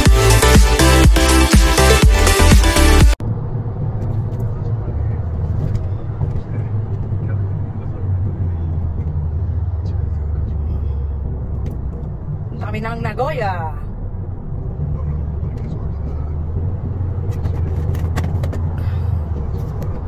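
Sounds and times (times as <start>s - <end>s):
car road rumble: 0.0s - 20.0s
woman speaking: 12.5s - 13.9s.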